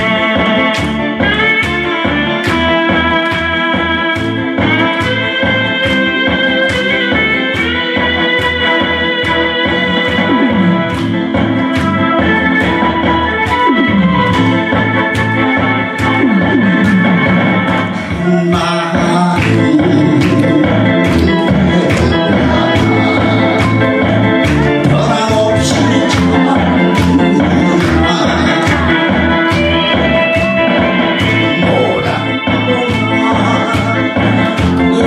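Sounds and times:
keyboard melody over steady beat: 0:00.0 - 0:35.0.

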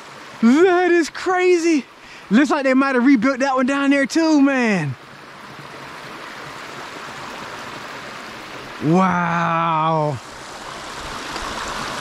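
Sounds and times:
creek water rushing: 0:00.0 - 0:12.0.

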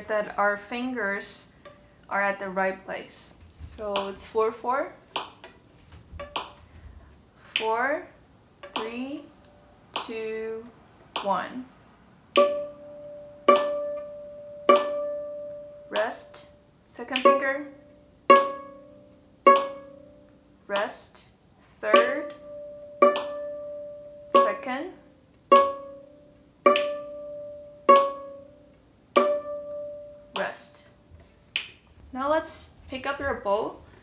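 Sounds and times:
viola plucked pizzicato: 0:05.1 - 0:06.6, 0:08.6 - 0:10.1, 0:12.3 - 0:31.7.

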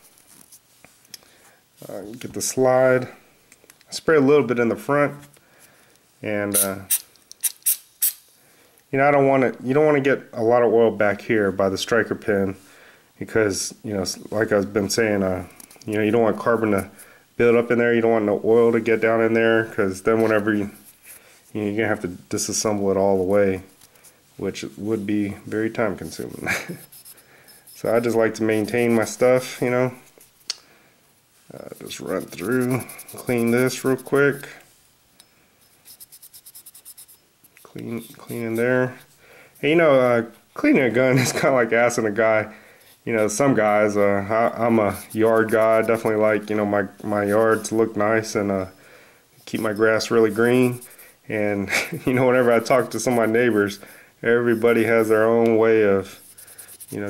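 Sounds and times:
cloth patch scrubbing metal: 0:24.4 - 0:30.2, 0:31.6 - 0:34.5, 0:35.7 - 0:41.5, 0:42.9 - 0:48.4, 0:49.4 - 0:57.0.

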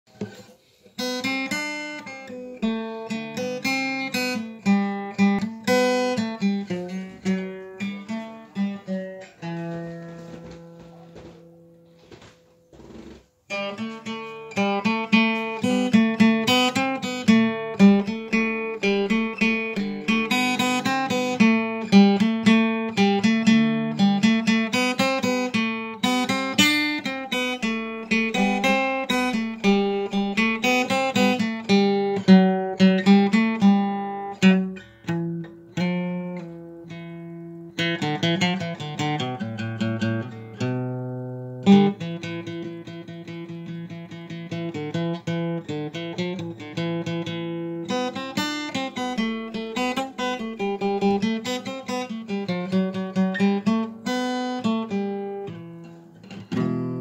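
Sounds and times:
guitar picking: 0:00.1 - 0:57.0.

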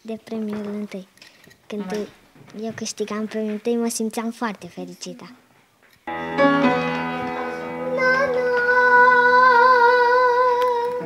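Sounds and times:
grand piano: 0:06.1 - 0:10.1
girl singing with vibrato: 0:07.5 - 0:11.0.

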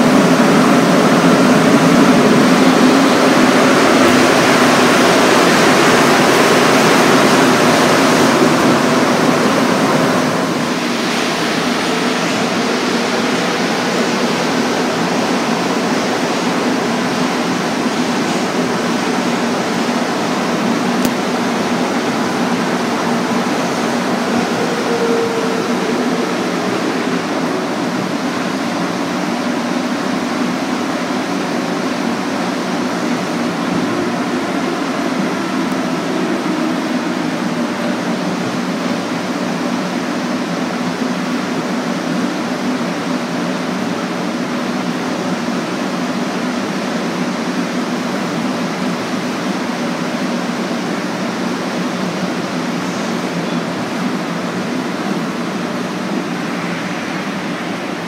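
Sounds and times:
metro car running noise: 0:00.0 - 0:58.0
faint whine: 0:16.8 - 0:30.4.

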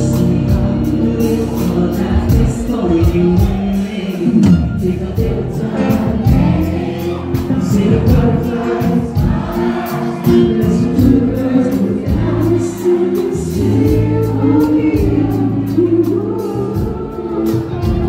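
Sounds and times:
live band music: 0:00.0 - 0:18.0
man singing lead vocal: 0:00.0 - 0:18.0.

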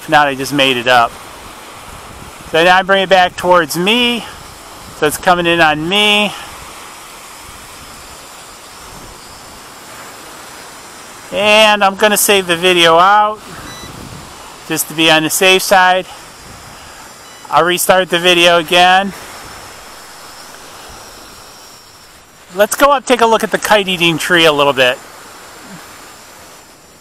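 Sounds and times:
quadcopter propellers whirring: 0:00.0 - 0:27.0
small waves on shore: 0:00.0 - 0:27.0
wind: 0:00.0 - 0:27.0
wind noise on microphone: 0:01.1 - 0:06.8, 0:07.4 - 0:09.7, 0:13.4 - 0:14.5, 0:16.1 - 0:17.4.

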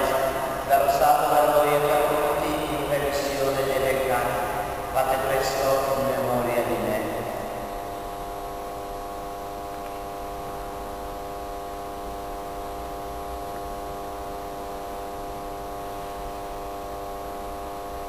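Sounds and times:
electrical mains hum: 0:00.0 - 0:18.0.

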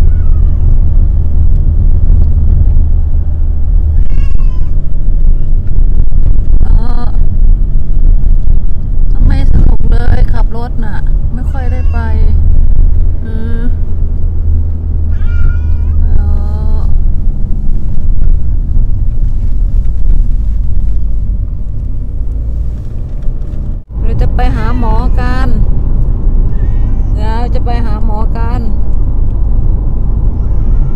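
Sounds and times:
car rumble: 0:00.0 - 0:30.9
cat meowing: 0:15.1 - 0:16.1, 0:26.5 - 0:27.2.

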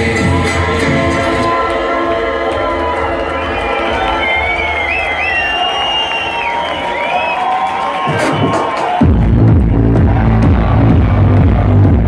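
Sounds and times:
electronic dance music: 0:00.0 - 0:12.0
crowd cheering: 0:01.0 - 0:12.0.

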